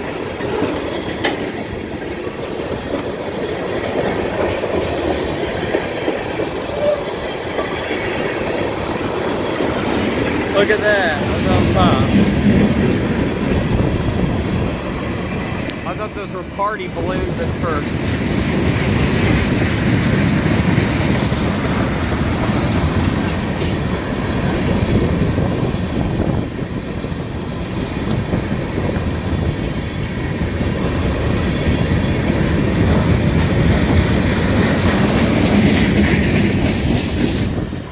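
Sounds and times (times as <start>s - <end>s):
freight train wheels on rails: 0.0s - 37.9s.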